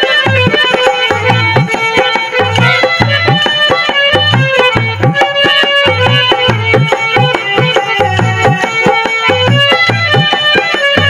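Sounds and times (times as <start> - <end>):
hand drum: 0.0 - 11.0
sustained melody instrument: 0.0 - 11.0.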